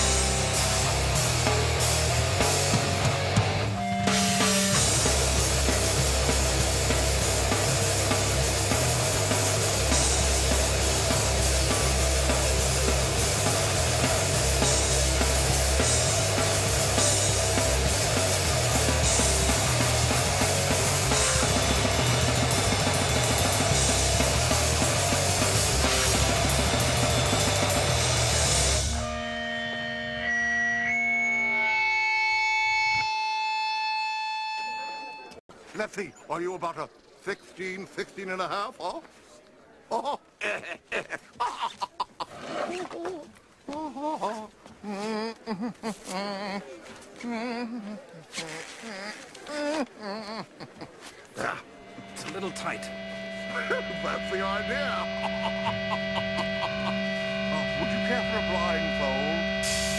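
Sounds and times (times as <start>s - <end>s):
punk band playing: 0.0s - 34.8s, 51.4s - 59.9s
distorted electric guitar ringing: 0.0s - 35.4s, 51.5s - 59.9s
high whistling feedback tone: 28.8s - 35.4s.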